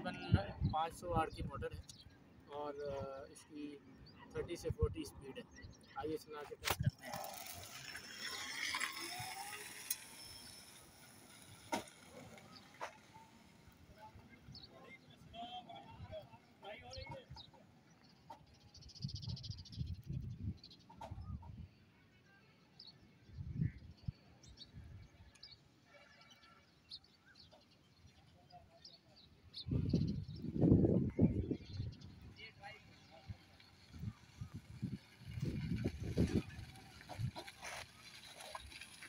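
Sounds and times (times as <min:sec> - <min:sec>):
wind rumbling on microphone: 0:00.0 - 0:02.1, 0:18.8 - 0:21.8, 0:23.2 - 0:25.2, 0:29.5 - 0:39.0
distant talking: 0:00.0 - 0:18.5.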